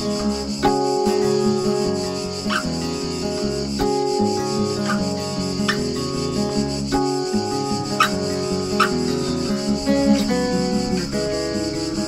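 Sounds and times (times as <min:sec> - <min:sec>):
cicadas buzzing: 0:00.0 - 0:12.0
fingerstyle acoustic guitar: 0:00.0 - 0:12.0
fingers squeaking on guitar strings: 0:00.5 - 0:12.0.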